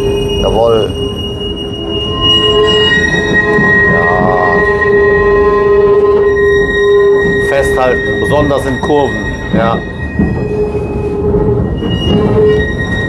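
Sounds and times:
tram rumbling on track: 0.0s - 13.0s
tram wheels squealing on rails: 0.0s - 13.0s.

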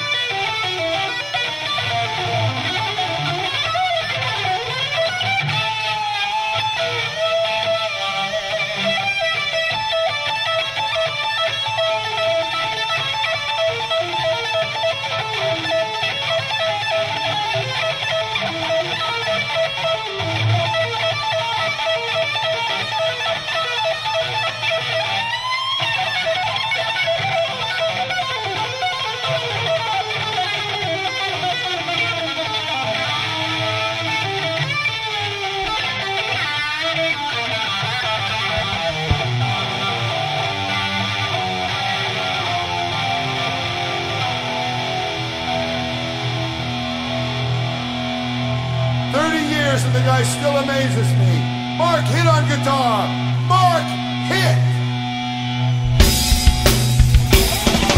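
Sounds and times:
electric guitar solo: 0.0s - 57.9s
live hard rock band playing: 0.0s - 57.9s.

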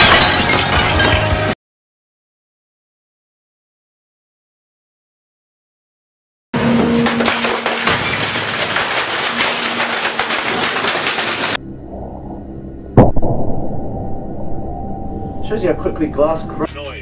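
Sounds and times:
picture tube breaking bang: 7.0s - 11.6s
loud dense crackling: 7.2s - 11.6s.

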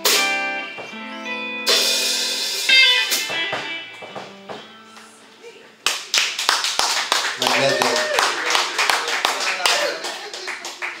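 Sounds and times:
audience clapping: 5.8s - 11.0s.

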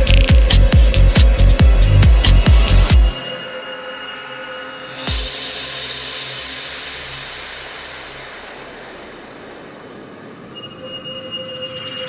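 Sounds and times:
synthesized noise wash: 0.0s - 12.0s
high synth tone: 1.6s - 12.0s.

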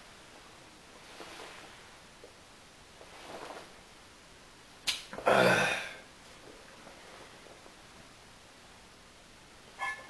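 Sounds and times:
sharp click: 4.8s - 5.1s.

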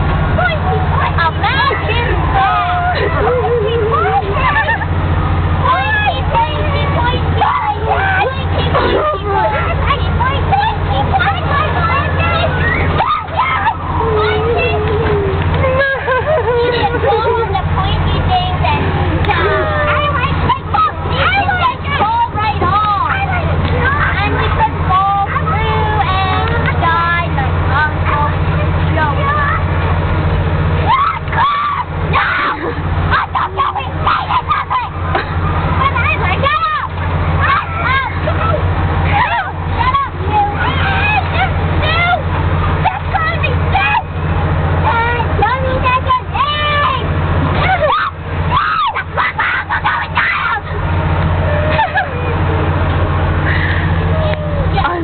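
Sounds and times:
children shouting and squealing: 0.0s - 55.0s
low motor hum: 0.0s - 55.0s
high-pitched voices talking: 0.2s - 29.9s, 30.8s - 52.7s.

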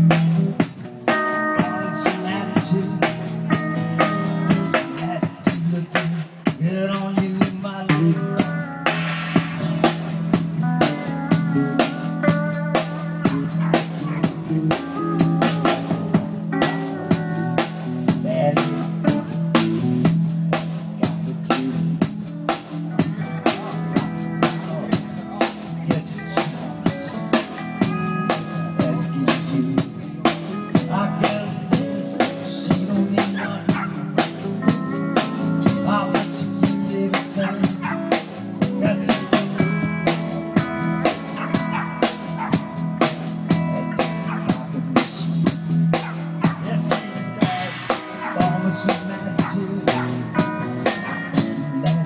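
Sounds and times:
bass line: 0.0s - 52.0s
drum kit beat: 0.0s - 52.0s
guitar: 0.0s - 52.0s
keyboard: 0.0s - 52.0s.

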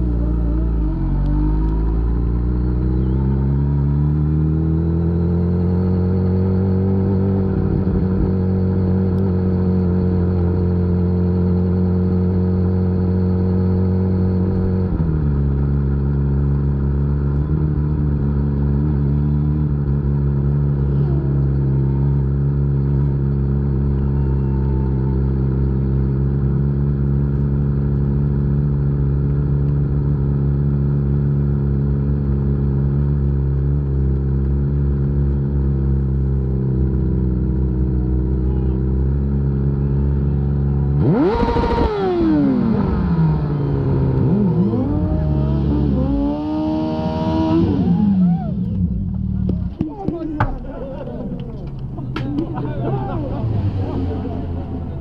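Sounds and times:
motorcycle engine running: 0.0s - 55.0s
excited voices: 23.9s - 25.7s, 47.6s - 55.0s.

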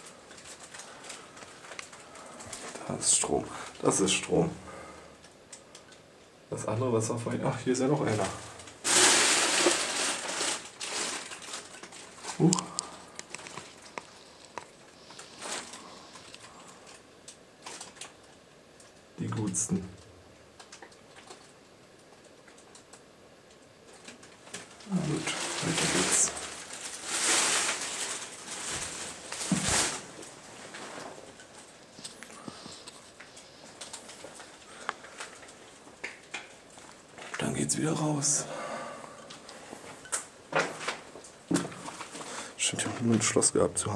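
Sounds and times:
rustling and handling noise: 0.0s - 6.4s, 7.3s - 38.2s, 39.1s - 43.9s.

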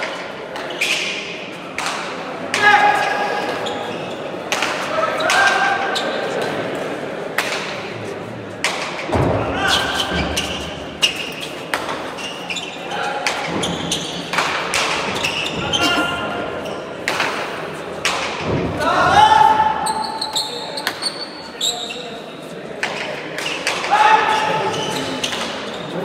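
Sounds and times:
voices calling out: 15.0s - 17.0s
loud drawn-out shout: 18.7s - 19.8s.

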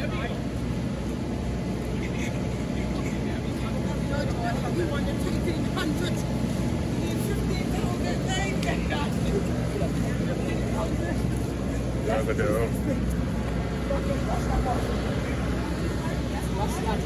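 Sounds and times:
people talking and calling: 0.0s - 17.0s.

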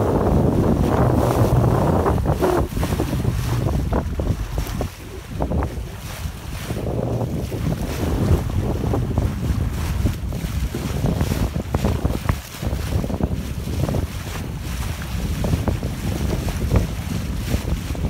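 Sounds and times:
choppy water slapping hull: 0.0s - 18.0s
wind buffeting microphone: 0.0s - 18.0s.

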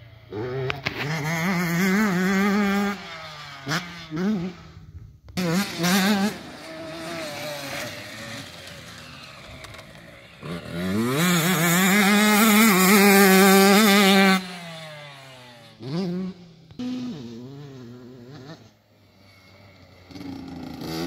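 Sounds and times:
motocross bike engines: 0.0s - 21.0s
motorbike accelerating with warbling note: 5.4s - 21.0s.

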